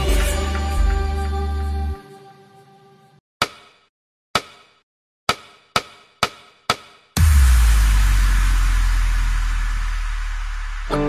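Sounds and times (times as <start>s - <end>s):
sharp percussive hits: 3.4s - 11.0s.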